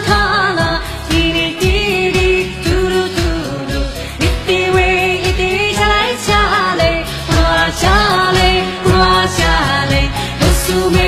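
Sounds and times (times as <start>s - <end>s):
backing track drum beat: 0.0s - 11.0s
woman singing: 0.0s - 11.0s.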